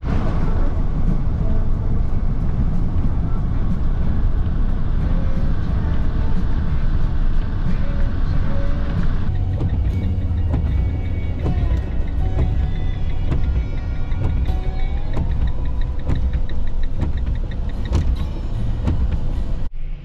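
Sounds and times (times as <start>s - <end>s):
vehicle cabin rumble on wet road: 0.0s - 19.7s
music playing: 0.0s - 20.0s
knocks in vehicle cabin: 15.2s - 19.3s.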